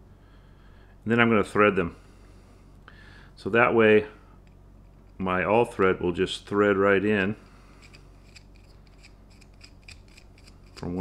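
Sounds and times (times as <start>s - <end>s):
faint metallic scraping and ticking: 7.3s - 11.0s.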